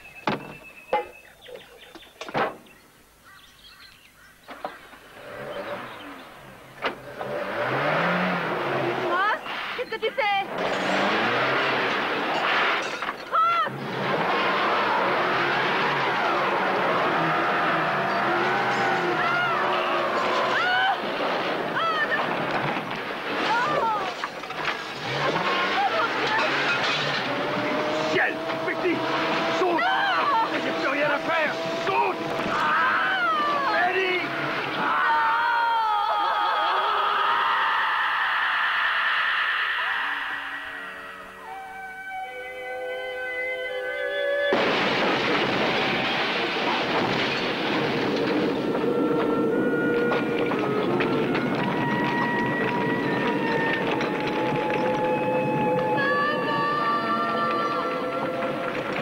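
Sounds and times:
tyres crunching on gravel: 4.5 - 35.2, 44.5 - 59.0
truck engine running: 10.5 - 34.8, 44.5 - 59.0
voices crying out: 13.3 - 22.5, 23.3 - 24.3, 25.0 - 42.4, 48.7 - 59.0.

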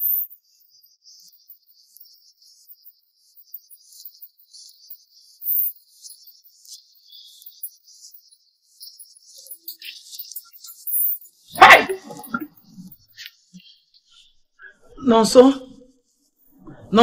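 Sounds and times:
insects chirping: 0.0 - 16.5.

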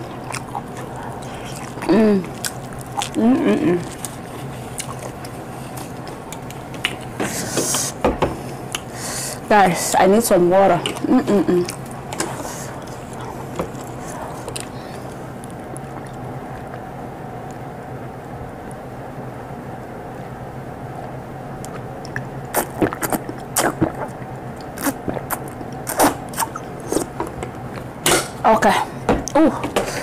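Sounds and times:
person gulping water: 0.0 - 7.2, 21.6 - 28.4
low room hum: 0.0 - 30.0.

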